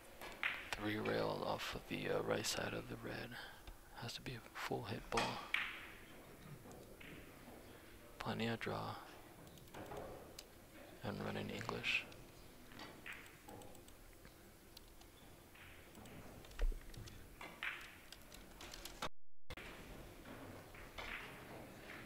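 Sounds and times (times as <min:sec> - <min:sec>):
billiard balls clicking: 0:09.4 - 0:19.0.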